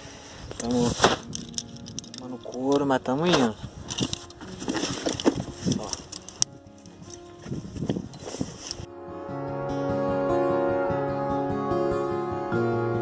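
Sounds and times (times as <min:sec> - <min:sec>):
acoustic guitar music: 0:00.0 - 0:13.0.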